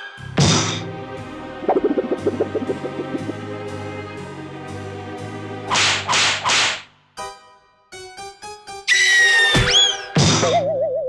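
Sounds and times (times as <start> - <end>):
background music: 0.0 - 11.0
cartoon swish effects: 1.6 - 4.1.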